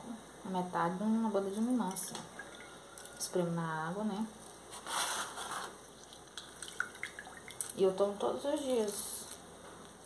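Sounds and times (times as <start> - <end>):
lime juice squirting into water: 6.0 - 7.8.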